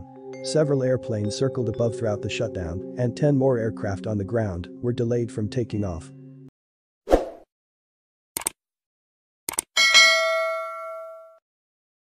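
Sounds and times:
notification bell chime: 0:09.8 - 0:11.4.

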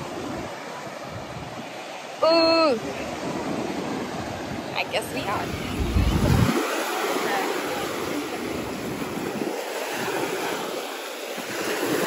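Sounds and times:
sea waves on beach: 0:00.0 - 0:12.0.

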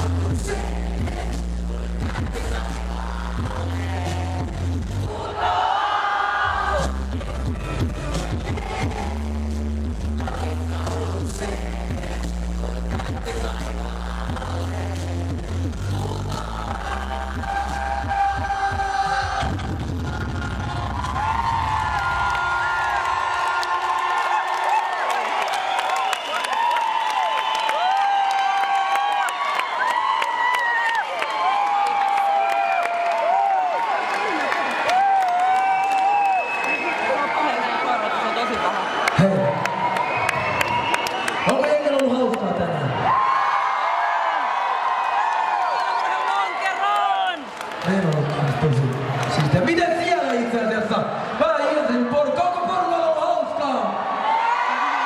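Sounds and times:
hip-hop bass beat over pa: 0:00.0 - 0:05.1, 0:06.6 - 0:21.4
crowd cheering and screaming: 0:02.2 - 0:09.3, 0:16.0 - 0:55.0.

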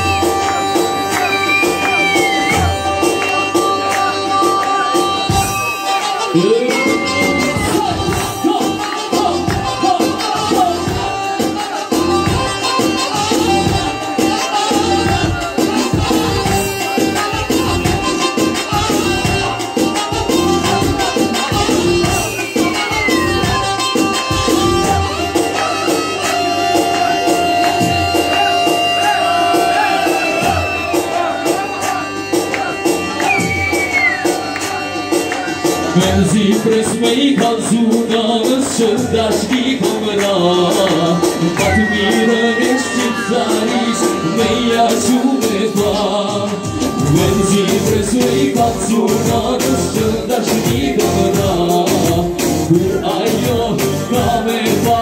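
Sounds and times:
drum beat: 0:00.0 - 0:55.0
live band dance music: 0:00.0 - 0:55.0.

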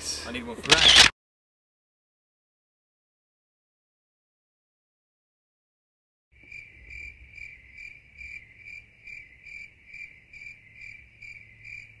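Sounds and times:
cricket trilling: 0:06.4 - 0:12.0.

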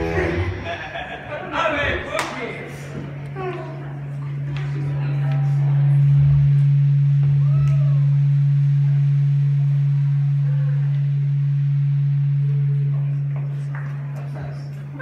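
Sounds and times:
faint voices: 0:00.0 - 0:06.6
loud steady low amplifier hum: 0:00.0 - 0:15.0.

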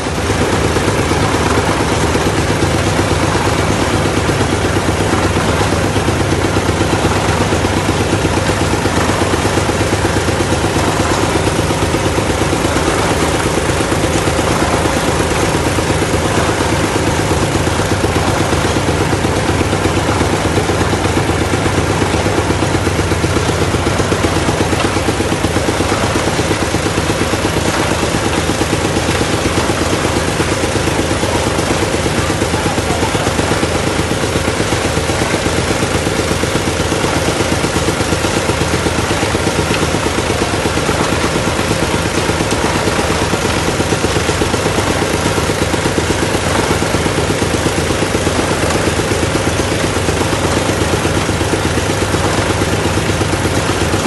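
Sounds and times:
drilling rig engine running: 0:00.0 - 0:54.0.

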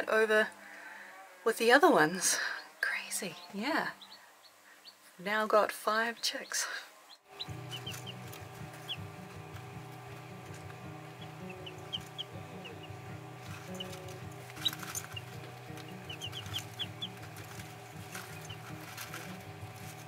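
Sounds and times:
chicks peeping: 0:06.4 - 0:20.0
background music with low notes: 0:07.3 - 0:20.0.

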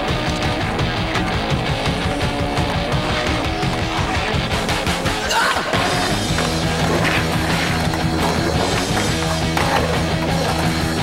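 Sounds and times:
rock music: 0:00.0 - 0:11.0
skateboard wheels rolling on concrete: 0:00.0 - 0:11.0
skateboard grinding on concrete: 0:05.8 - 0:11.0.

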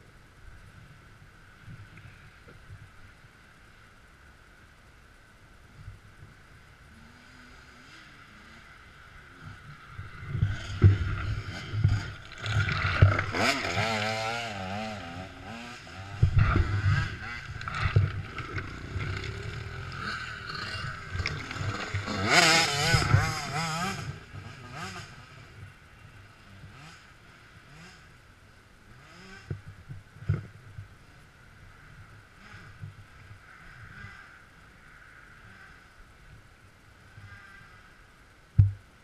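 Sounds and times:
dirt bike engine revving: 0:06.9 - 0:28.2, 0:28.8 - 0:29.6, 0:32.3 - 0:32.8.

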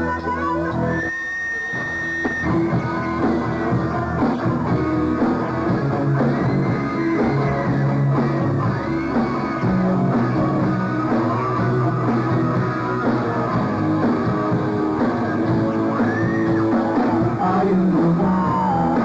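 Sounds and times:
faint drums: 0:00.0 - 0:19.0.

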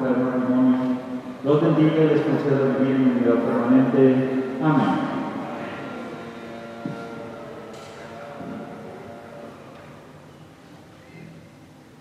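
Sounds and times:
priest speaking amplified: 0:00.0 - 0:06.0
low steady hum: 0:00.0 - 0:12.0.

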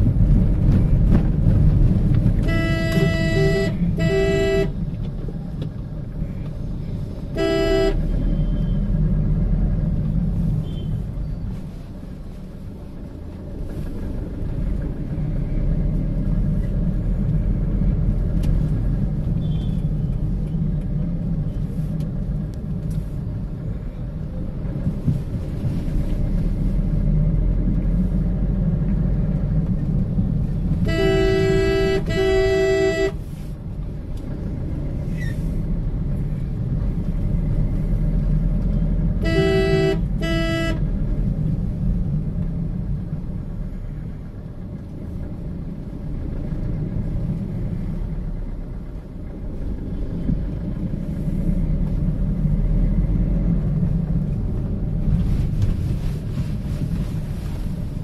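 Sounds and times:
vehicle rumbling on rough road: 0:00.0 - 0:58.0
vehicle horn: 0:02.4 - 0:04.8, 0:07.3 - 0:08.8, 0:30.8 - 0:33.4, 0:39.2 - 0:41.0.

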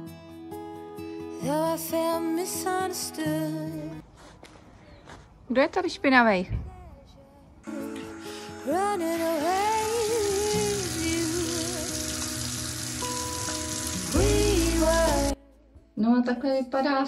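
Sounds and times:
background music with singing: 0:00.0 - 0:04.0, 0:06.5 - 0:17.0
shower water spraying: 0:09.3 - 0:15.4.

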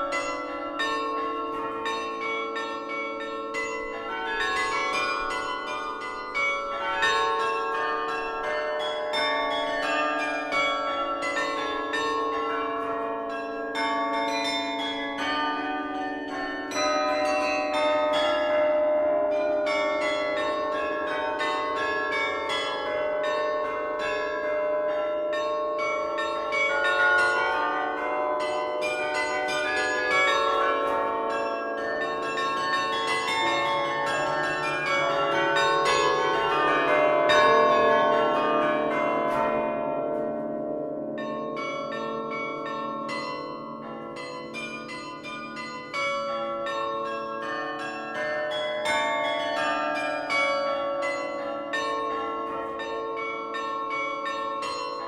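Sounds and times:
carillon bells ringing melody: 0:00.0 - 0:55.0.

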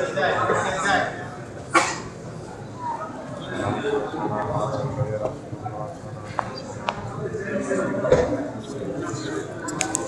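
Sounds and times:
murmur of indoor crowd: 0:00.0 - 0:10.0.

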